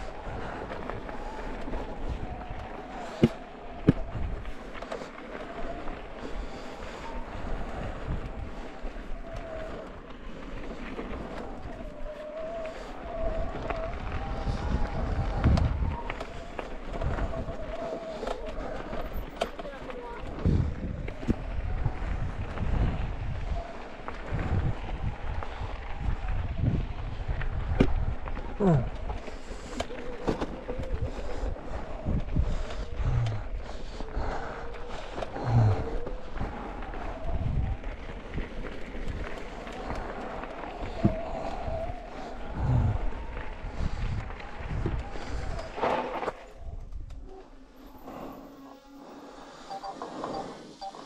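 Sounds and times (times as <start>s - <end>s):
bike tyres crackling over gravel: 0.0s - 51.0s
faint steady tone: 48.2s - 51.0s.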